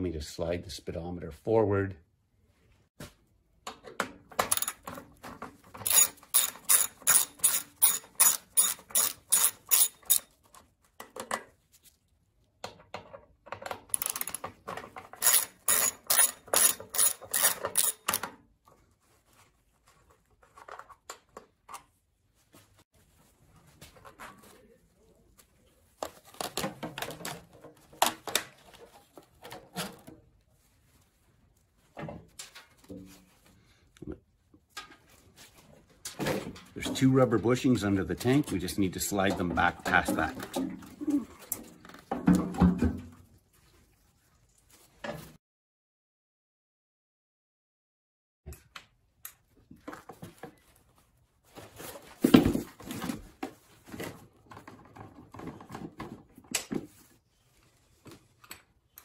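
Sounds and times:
small metal parts clinking: 0:04.4 - 0:04.9, 0:05.8 - 0:10.3, 0:13.9 - 0:14.4, 0:15.2 - 0:18.2
socket ratchet clicking: 0:05.8 - 0:10.2.

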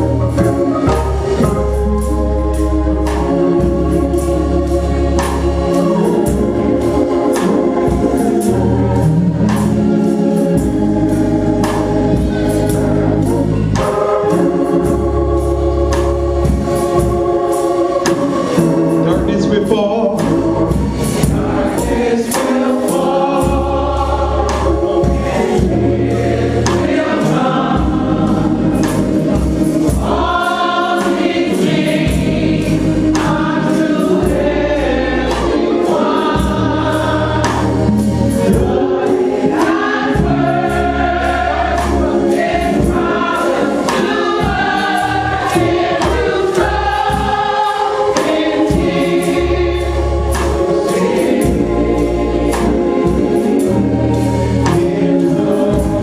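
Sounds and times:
choir singing gospel: 0:00.0 - 0:56.0.

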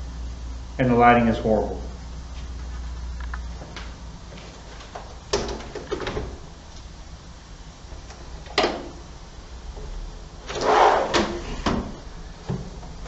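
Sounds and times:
low room noise: 0:00.0 - 0:13.0.

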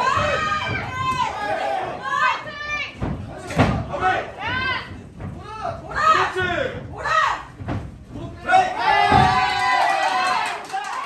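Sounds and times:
people shouting: 0:00.0 - 0:07.6, 0:08.2 - 0:11.0
strike thump on body: 0:09.0 - 0:09.5.

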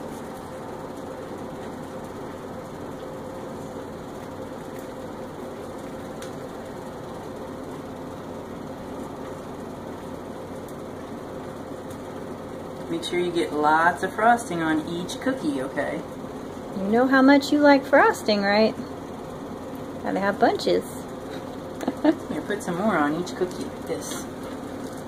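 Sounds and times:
mechanical motor hum: 0:00.0 - 0:25.0.

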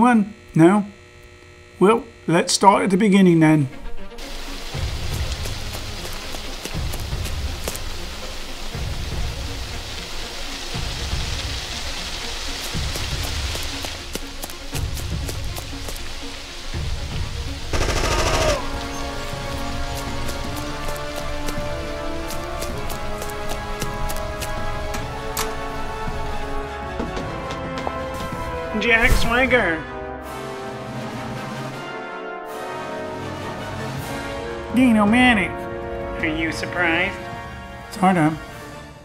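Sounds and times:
action music with low beat: 0:12.7 - 0:28.6
gunshots: 0:17.7 - 0:18.8.

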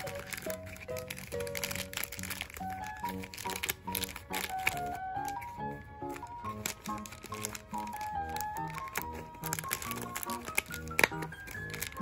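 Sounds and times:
background music with simple melody: 0:00.0 - 0:12.0
plastic packet crinkling: 0:00.0 - 0:12.0.

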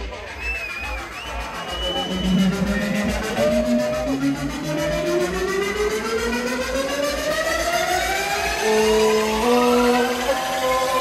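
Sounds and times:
electronic dance music: 0:00.0 - 0:11.0
heavy bass and kick drum: 0:00.0 - 0:11.0
rising synth sweeps: 0:01.0 - 0:10.6.

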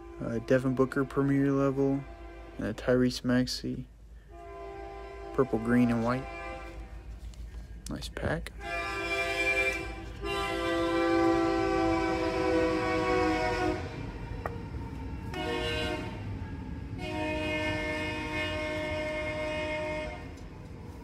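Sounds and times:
locomotive horn blasts: 0:00.0 - 0:03.2, 0:04.2 - 0:07.5, 0:08.4 - 0:20.6.

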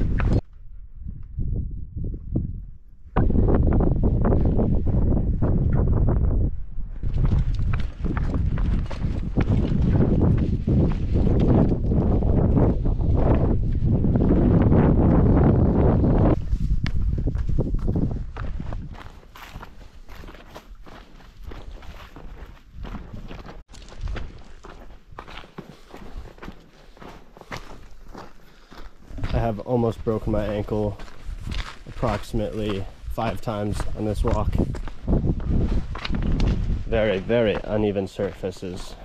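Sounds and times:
footsteps on gravel: 0:07.0 - 0:12.2, 0:16.3 - 0:39.0.

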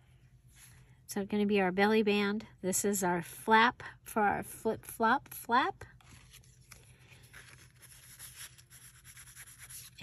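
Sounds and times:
paper rustling: 0:06.0 - 0:10.0.

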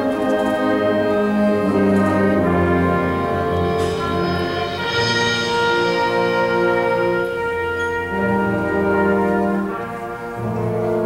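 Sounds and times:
concert band playing chords: 0:00.2 - 0:11.0.

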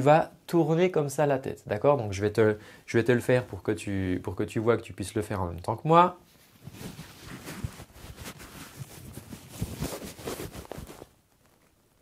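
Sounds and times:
shirt fabric rustling: 0:06.2 - 0:11.7.

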